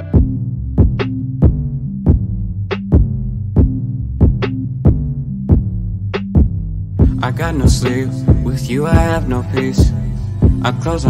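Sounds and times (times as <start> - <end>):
deep bass notes: 0.0 - 11.0
kick drum: 0.2 - 10.7.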